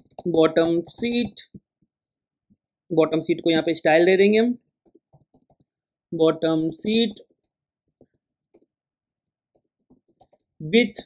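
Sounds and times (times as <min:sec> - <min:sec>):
computer mouse clicks: 0:04.8 - 0:05.7, 0:07.3 - 0:08.7, 0:09.5 - 0:10.5.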